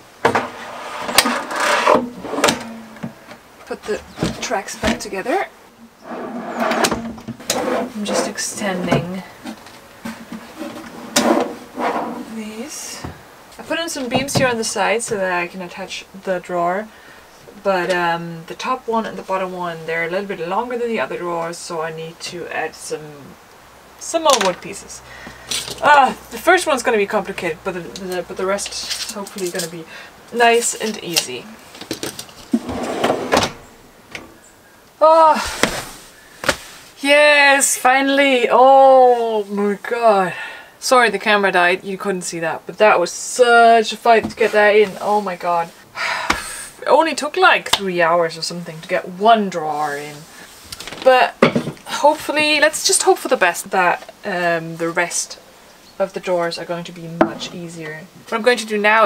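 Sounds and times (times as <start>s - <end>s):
metal drawer slide scraping: 0.2s - 3.2s, 6.0s - 8.9s, 10.5s - 12.3s, 32.5s - 34.3s.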